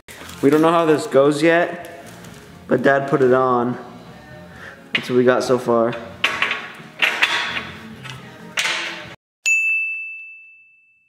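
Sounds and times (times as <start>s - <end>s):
bright chime ding: 9.4s - 11.0s.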